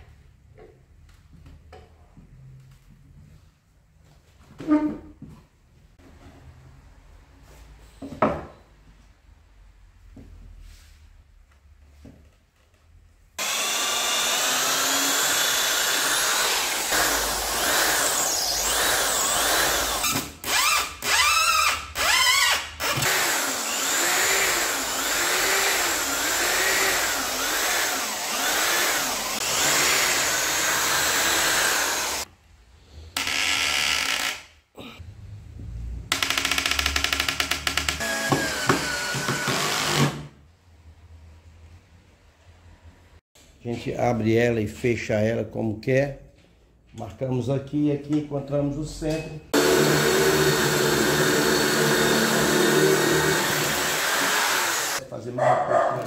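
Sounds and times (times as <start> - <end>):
electric drill boring holes: 13.4 - 32.3, 33.2 - 34.5, 36.1 - 40.3, 49.6 - 55.0.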